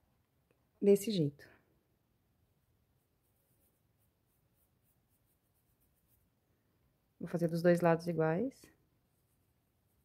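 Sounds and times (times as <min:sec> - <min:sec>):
soft brush strokes: 0:02.3 - 0:10.0.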